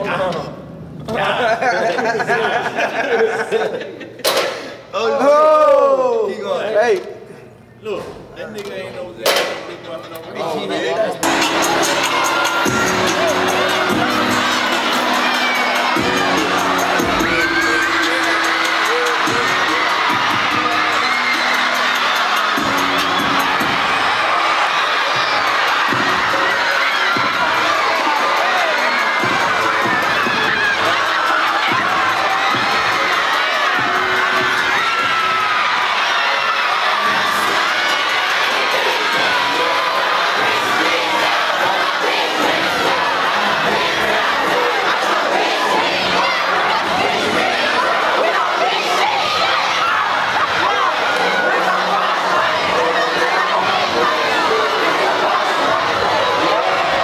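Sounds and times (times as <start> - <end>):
crowd shouting and cheering: 4.2 - 57.0.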